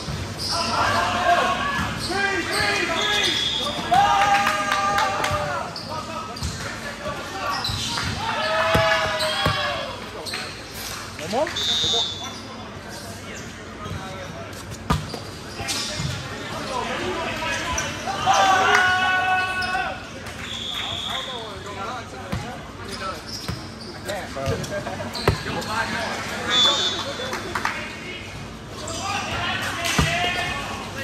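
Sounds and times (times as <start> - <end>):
players shouting: 0.5 - 6.3, 7.4 - 10.0, 17.2 - 20.0, 28.8 - 31.0
sneakers squeaking on court: 5.7 - 12.6, 13.2 - 16.3, 21.1 - 27.0.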